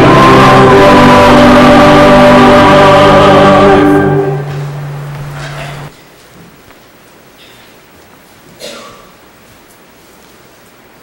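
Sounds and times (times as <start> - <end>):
choir and congregation singing: 0.0 - 4.7
low accompanying note: 0.0 - 5.0.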